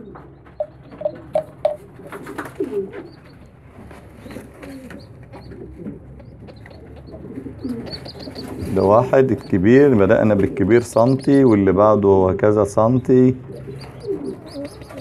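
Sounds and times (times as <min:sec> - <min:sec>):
faint rustling of birds: 0:00.0 - 0:15.0
pigeons cooing: 0:00.0 - 0:15.0.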